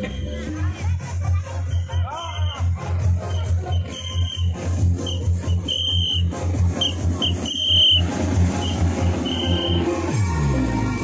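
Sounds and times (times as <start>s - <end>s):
heavy bass beat music: 0.0s - 11.0s.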